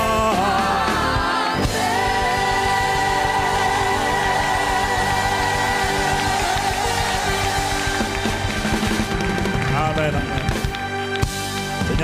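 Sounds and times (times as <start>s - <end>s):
congregation singing: 0.0s - 9.6s
keyboard chords: 0.0s - 12.0s.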